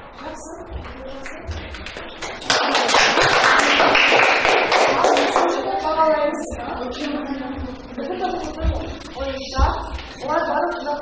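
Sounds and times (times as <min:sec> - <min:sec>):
students clapping: 0:01.3 - 0:05.7.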